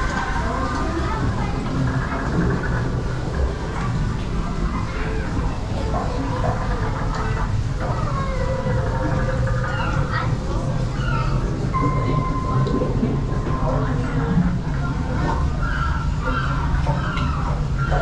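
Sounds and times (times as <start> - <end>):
indistinct voices: 0.0 - 18.0
mechanical rumble and hum: 0.0 - 18.0.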